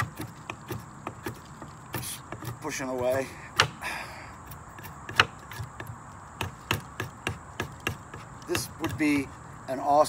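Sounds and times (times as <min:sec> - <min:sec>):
knife whittling wood clicks: 0:00.0 - 0:03.8, 0:04.4 - 0:09.3.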